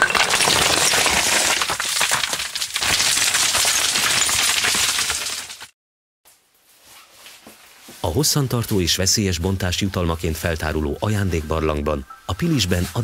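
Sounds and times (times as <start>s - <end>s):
rocks tumbling and clattering: 0.0s - 5.7s.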